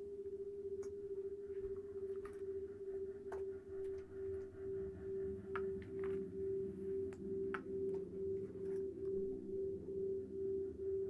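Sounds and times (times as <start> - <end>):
pulsing drone tone: 0.0 - 11.0.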